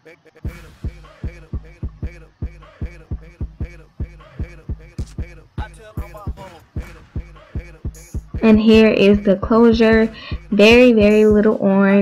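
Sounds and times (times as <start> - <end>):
hip-hop beat with deep bass kicks: 0.1 - 12.0.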